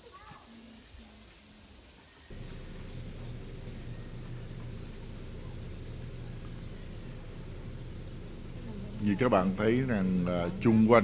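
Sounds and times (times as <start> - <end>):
steady low rumbling: 2.3 - 11.0.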